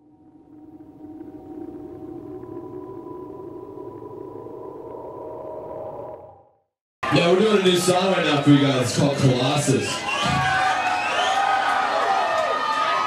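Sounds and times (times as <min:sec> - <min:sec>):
held synth tones: 0:00.0 - 0:06.8
low rumble: 0:00.0 - 0:06.8.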